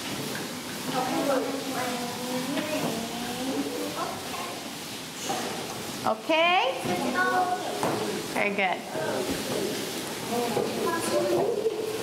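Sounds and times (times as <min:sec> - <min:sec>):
young children's wordless voices: 0:00.8 - 0:09.6, 0:10.2 - 0:12.0.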